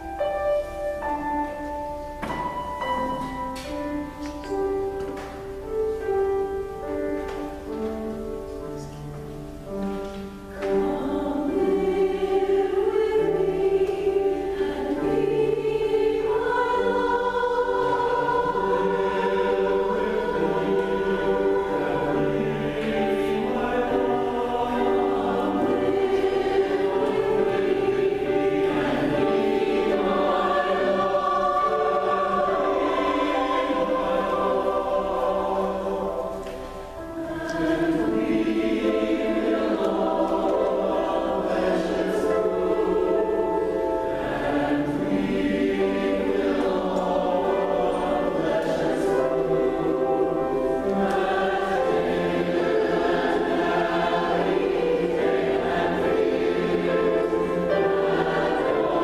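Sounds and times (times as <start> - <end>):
mixed choir singing: 0.0 - 59.0
piano accompaniment: 0.0 - 59.0.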